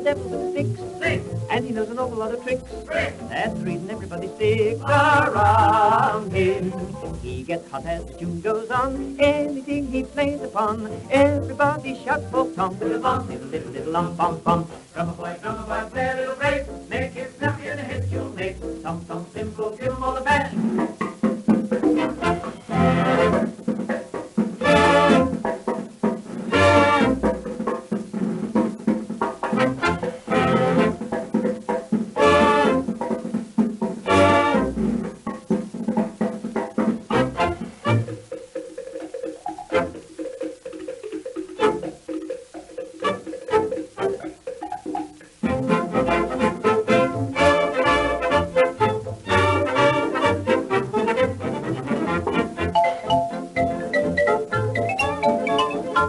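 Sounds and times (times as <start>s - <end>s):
dance band playing chords: 0.0s - 56.0s.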